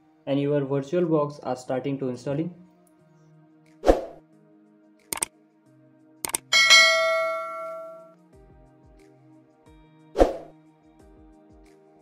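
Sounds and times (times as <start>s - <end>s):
soft background music: 0.0s - 12.0s
short clicks: 5.1s - 5.3s, 6.2s - 6.5s
bright bell ding: 6.5s - 8.1s.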